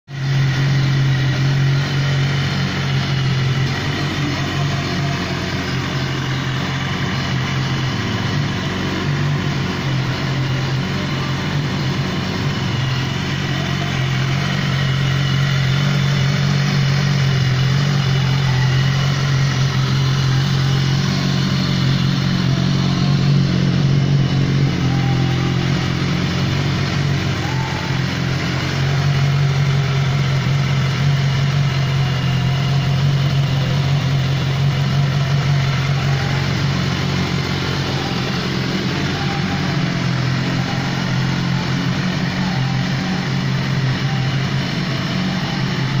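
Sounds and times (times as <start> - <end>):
motorcycle engine idling: 0.1 - 46.0.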